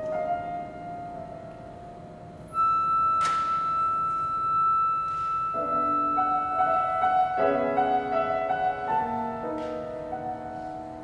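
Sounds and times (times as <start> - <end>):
flute holding a high note: 2.5 - 7.4.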